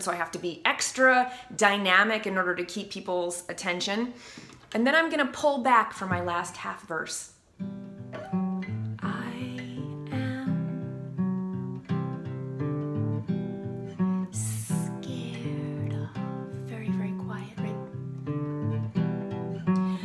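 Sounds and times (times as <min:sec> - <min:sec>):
acoustic guitar chords: 0:07.6 - 0:20.0.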